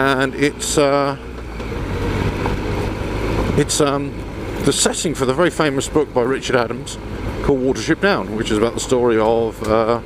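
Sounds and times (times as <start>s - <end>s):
motorcycle engine running: 0.0s - 10.0s
wind and tyre noise: 0.0s - 10.0s.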